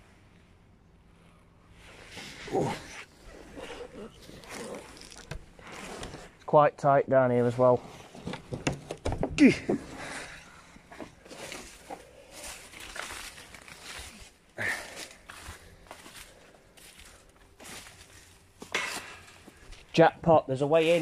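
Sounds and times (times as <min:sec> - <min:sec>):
rustling of clothing and plants: 0:00.0 - 0:21.0
footsteps through leaf litter: 0:11.3 - 0:18.4.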